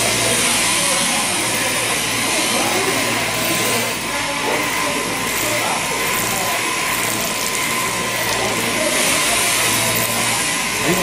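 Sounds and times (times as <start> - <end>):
electric sheep shears running: 0.0 - 11.0.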